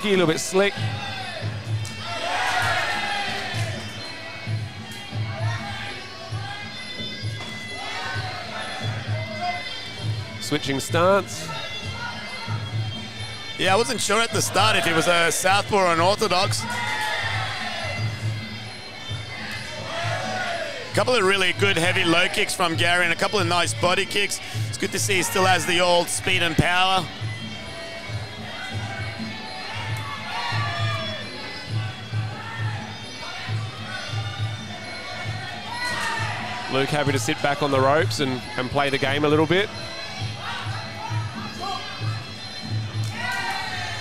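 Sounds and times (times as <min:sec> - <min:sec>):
crowd cheering and shouting: 0:00.0 - 0:04.3, 0:13.6 - 0:18.4, 0:19.3 - 0:27.1, 0:28.0 - 0:39.2, 0:43.0 - 0:44.0.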